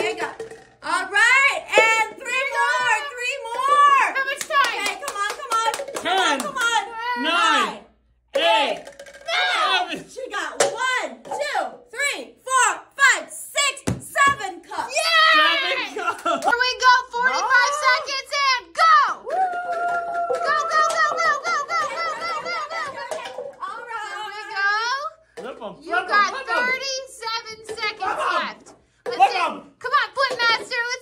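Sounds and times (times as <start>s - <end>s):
people exclaiming excitedly: 14.9s - 16.0s, 16.7s - 24.5s.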